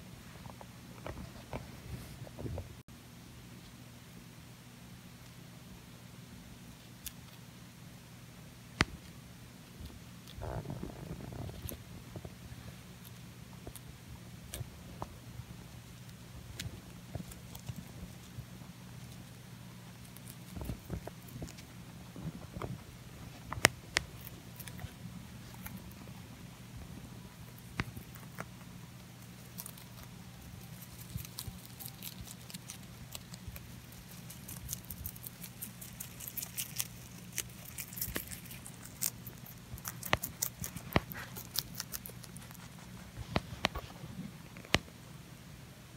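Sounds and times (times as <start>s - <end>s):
rabbit crunching leafy greens: 5.1s - 45.2s.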